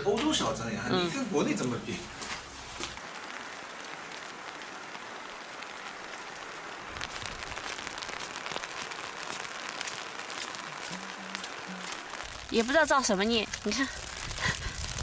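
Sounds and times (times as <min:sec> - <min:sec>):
hiss of snow and rain falling: 0:00.0 - 0:15.0.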